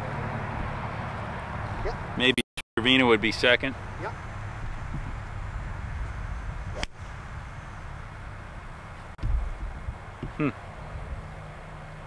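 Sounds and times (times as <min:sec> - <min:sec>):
golf club swish: 0:06.7 - 0:07.1
clubhead striking ball: 0:06.8 - 0:07.0.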